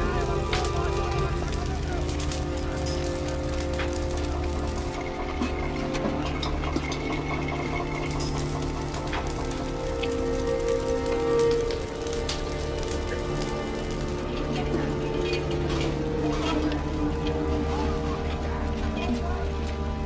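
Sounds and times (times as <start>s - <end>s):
fire crackling: 0.0s - 20.0s
sustained film music: 0.0s - 20.0s.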